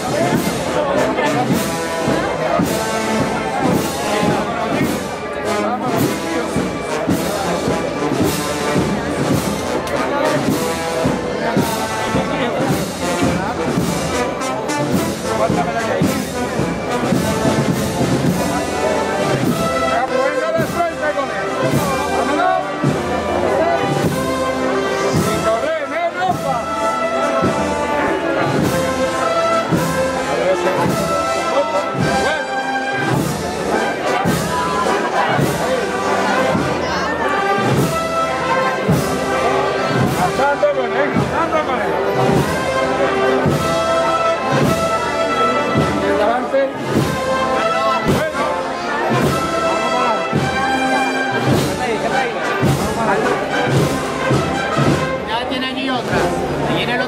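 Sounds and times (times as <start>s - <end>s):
brass band playing a march: 0.0s - 57.0s
steady drum beat: 0.0s - 57.0s.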